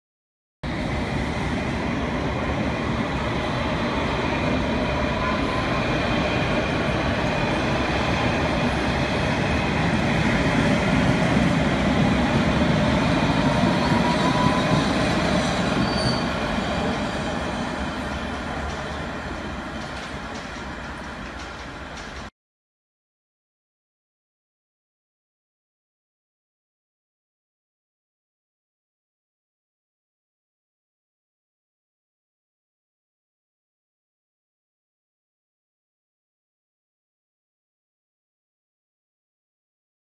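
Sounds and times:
train wheels rumbling on rails: 0.7s - 22.3s.

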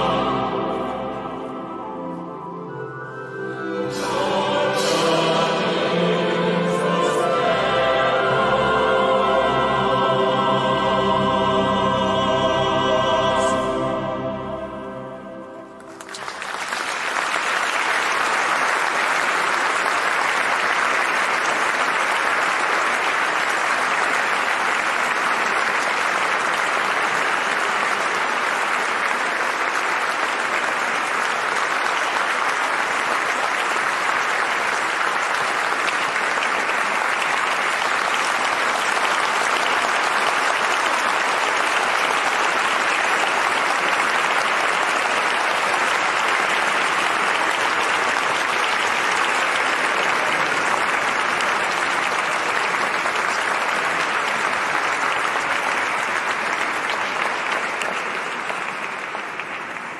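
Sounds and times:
audience applauding: 15.8s - 59.9s.

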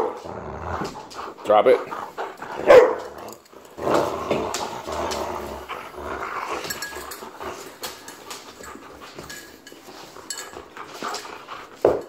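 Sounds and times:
dog growling: 0.0s - 9.4s.

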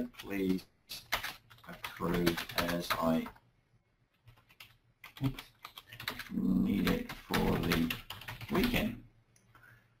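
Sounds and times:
computer keyboard typing: 0.0s - 3.4s, 4.2s - 9.0s.

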